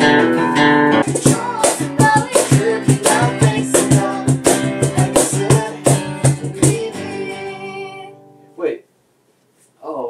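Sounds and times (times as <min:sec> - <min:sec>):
acoustic guitar strumming: 0:00.0 - 0:08.6
sharp percussive hits: 0:01.0 - 0:06.9.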